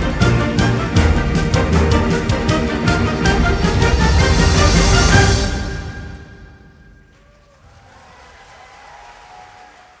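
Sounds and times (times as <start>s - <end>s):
audience applauding: 7.0s - 10.0s.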